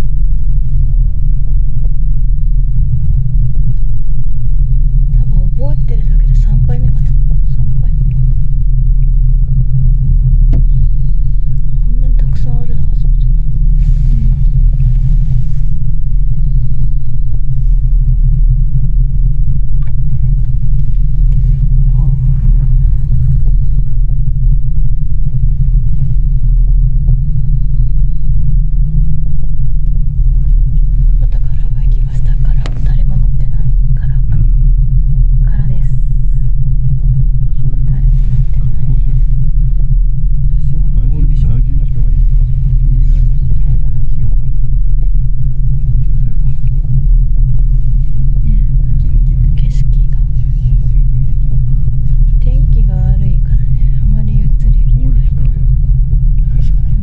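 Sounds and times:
cable car gondola rumbling: 0.0s - 57.0s.

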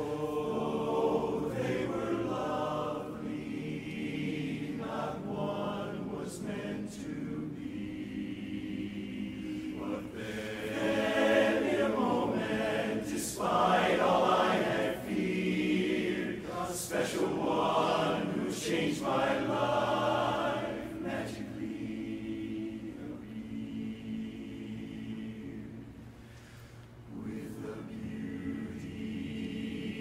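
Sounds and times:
men's chorus singing a cappella: 0.0s - 26.0s, 27.1s - 30.0s.

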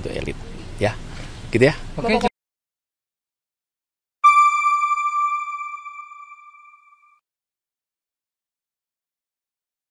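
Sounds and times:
bell-like chime ringing: 4.2s - 7.1s.

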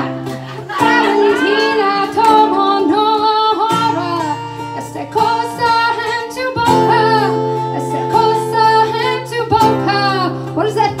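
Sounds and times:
acoustic guitar: 0.0s - 11.0s
person singing: 0.0s - 11.0s.

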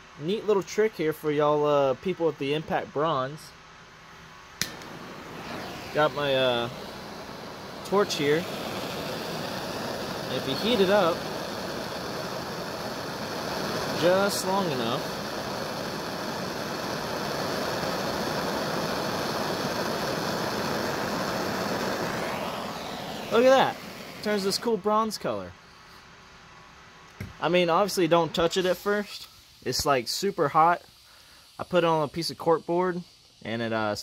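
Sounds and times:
gas torch flame hissing: 4.2s - 25.2s, 27.1s - 34.0s
gas torch ignition click: 4.6s - 24.3s.

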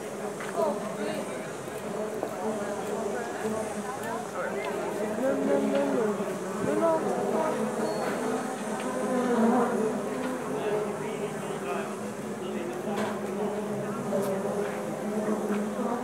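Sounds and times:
murmur of crowd voices: 0.0s - 16.0s.

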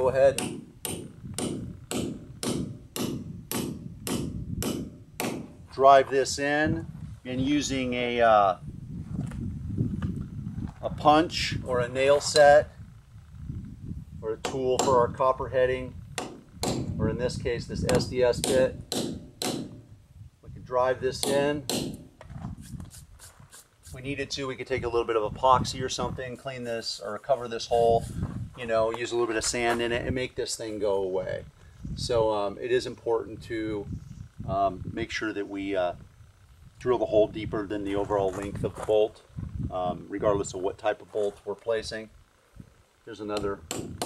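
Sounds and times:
hammer striking metal anchor: 0.4s - 5.6s, 17.9s - 19.8s, 21.2s - 22.1s.

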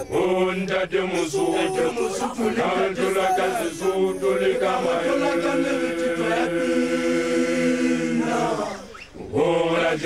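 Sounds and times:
group chanting in unison: 0.0s - 10.0s.

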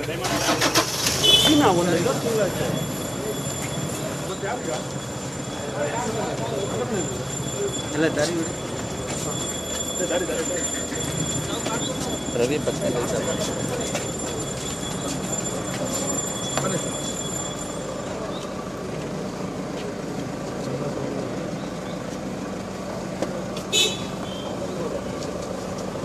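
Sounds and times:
street noise: 0.0s - 26.0s
crowd murmur: 1.4s - 26.0s.

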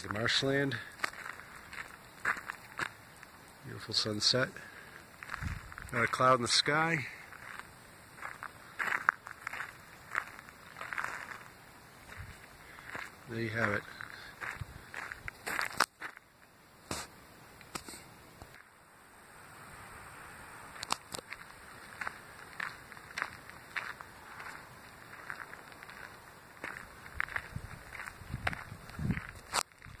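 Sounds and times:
footsteps crunching on gravel: 0.0s - 16.3s, 20.7s - 30.0s.

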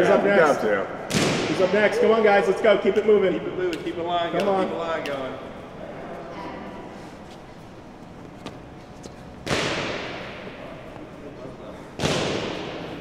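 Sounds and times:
room noise: 0.0s - 13.0s.

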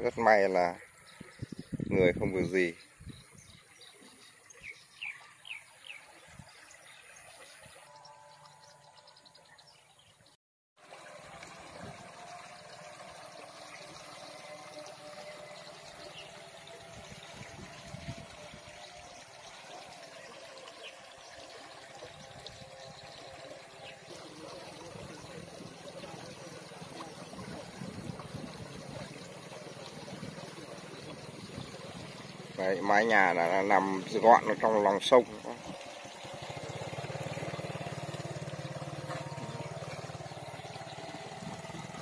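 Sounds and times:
faint water trickling in a canal: 0.0s - 42.0s.

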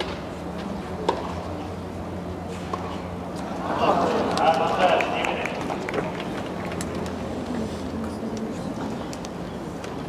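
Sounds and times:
murmur of spectators: 0.1s - 10.0s.

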